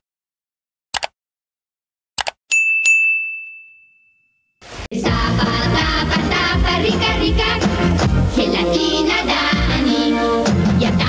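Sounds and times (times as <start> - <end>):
mouse double click: 2.2 - 2.4
notification bell ding: 2.5 - 4.5.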